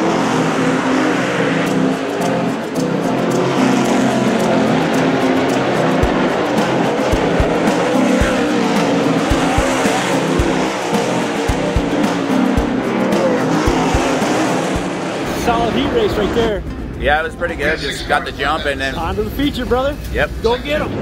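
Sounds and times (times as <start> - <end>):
background music: 0.0 - 21.0
race car engines: 0.0 - 21.0
low thumps: 2.7 - 15.2.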